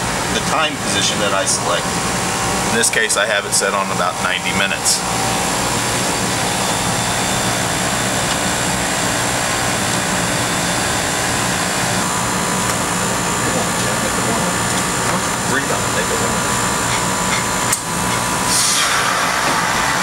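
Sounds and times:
heat pump unit humming and rushing: 0.0s - 20.0s.

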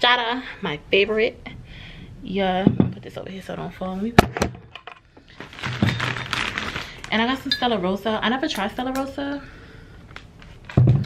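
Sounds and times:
plastic bag rustling: 5.3s - 8.0s, 10.0s - 11.0s.

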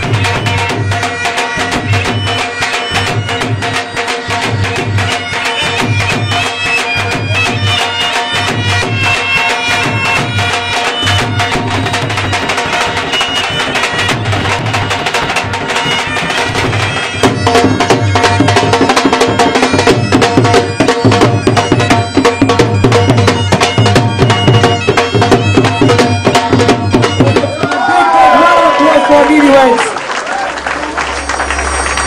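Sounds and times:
rapid drumming on drums: 0.0s - 29.5s
bagpipes playing: 0.0s - 29.8s.

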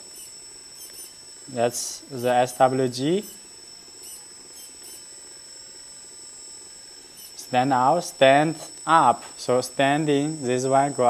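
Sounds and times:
hydraulic pump whining and humming: 0.0s - 11.0s.

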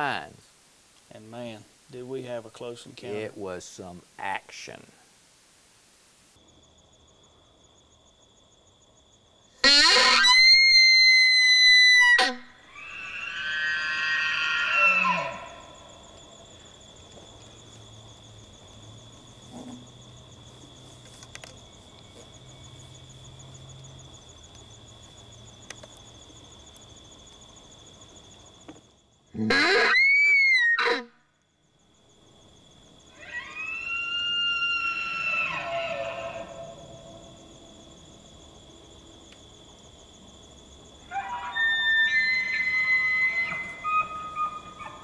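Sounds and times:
elk bugling: 9.6s - 16.2s, 29.4s - 31.2s, 33.1s - 37.3s, 41.1s - 45.0s.

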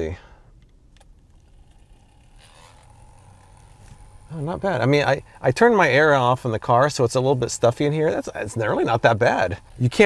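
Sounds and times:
small fan whirring: 0.0s - 10.0s.

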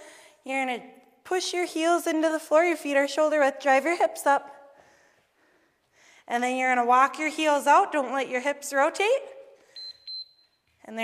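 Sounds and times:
timer short high-pitched beeps: 9.8s - 10.5s.

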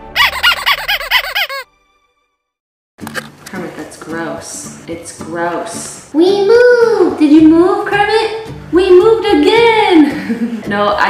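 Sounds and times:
squeaky chirping jingle: 0.0s - 1.6s.

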